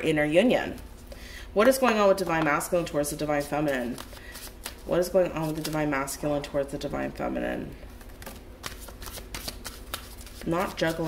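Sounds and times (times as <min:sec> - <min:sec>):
cards being shuffled: 0:03.3 - 0:05.9, 0:07.8 - 0:11.0.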